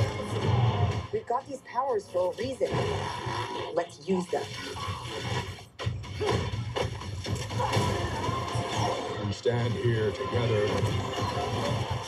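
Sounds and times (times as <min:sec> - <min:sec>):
action music with low bass: 0:00.0 - 0:01.2.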